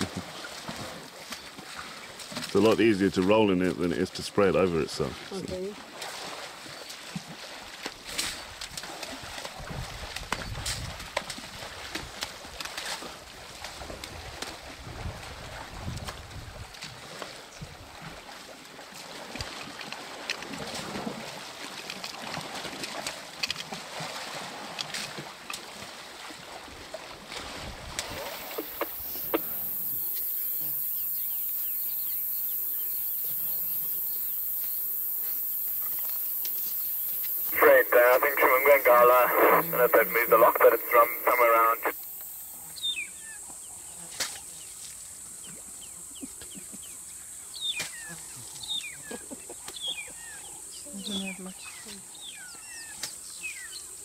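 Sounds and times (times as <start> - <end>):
muddy water splashing: 0.0 - 42.0
steady high hiss: 28.2 - 42.8.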